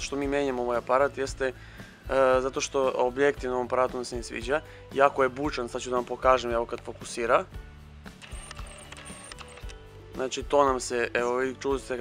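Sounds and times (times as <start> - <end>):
faint background music: 0.0 - 12.0
camera autofocus motor whirring: 8.2 - 9.8.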